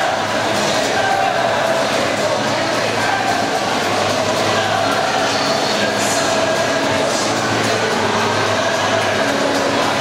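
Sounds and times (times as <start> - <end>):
indoor pool hall noise: 0.0 - 10.0.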